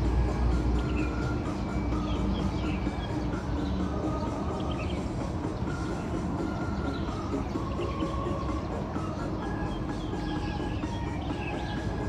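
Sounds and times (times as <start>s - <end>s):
dance music from speaker: 0.0s - 12.0s.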